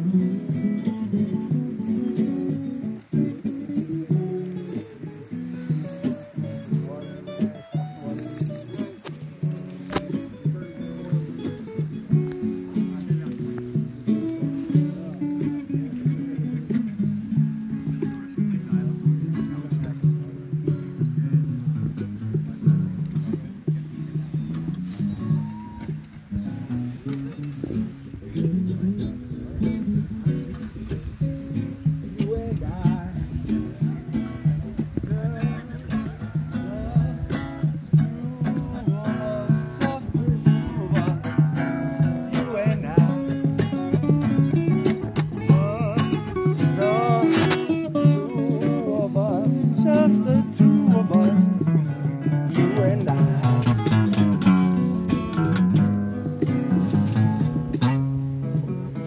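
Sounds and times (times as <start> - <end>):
two acoustic guitars playing: 0.0 - 59.0.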